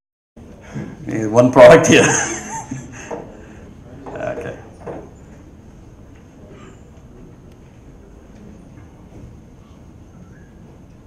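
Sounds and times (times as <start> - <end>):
faint high whine: 5.1 - 11.0.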